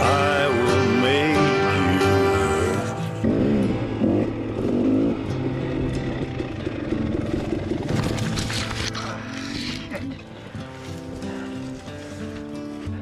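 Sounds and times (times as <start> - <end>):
dirt bike engine revving: 2.2 - 9.9.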